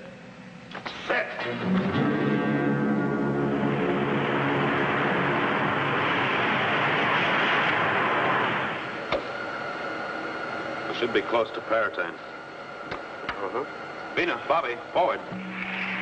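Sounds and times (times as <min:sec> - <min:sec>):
steady hum: 0:00.0 - 0:16.0
thin high whine: 0:00.0 - 0:16.0
dramatic music sting: 0:01.4 - 0:06.7
spaceship engine rush: 0:01.5 - 0:09.0.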